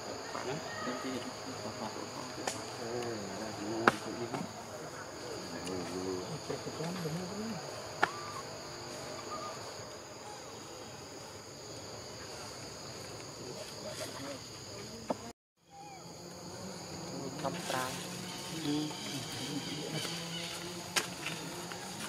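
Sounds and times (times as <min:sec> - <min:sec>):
insects chorus: 0:00.0 - 0:22.0.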